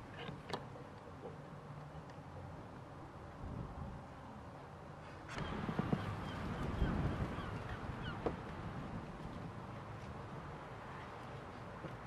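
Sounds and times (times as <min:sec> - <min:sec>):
faint bird calls: 0:05.0 - 0:08.4.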